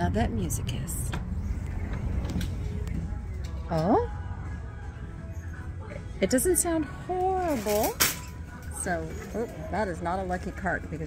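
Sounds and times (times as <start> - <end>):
steady low rumble: 0.0 - 7.1
sliding glass doors opening: 1.0 - 3.8.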